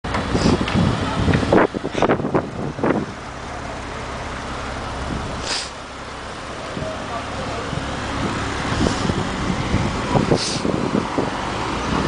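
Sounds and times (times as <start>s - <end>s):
car engine pulling away: 0.1s - 12.0s.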